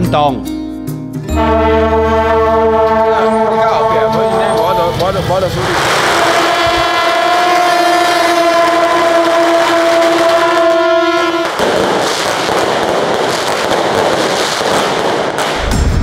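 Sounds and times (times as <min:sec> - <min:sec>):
steady horn-like tone: 0:01.3 - 0:11.6
firecrackers crackling: 0:04.6 - 0:15.9.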